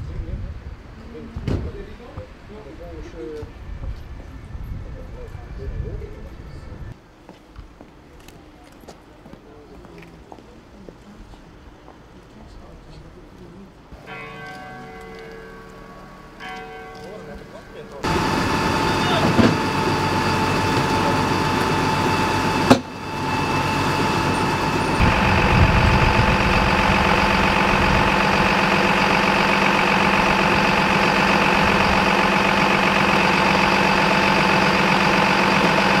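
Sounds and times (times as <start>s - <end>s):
diesel engine running: 18.0s - 36.0s.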